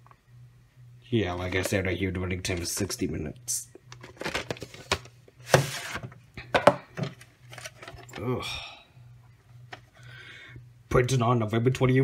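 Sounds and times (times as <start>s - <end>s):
person grunting: 8.2s - 8.8s.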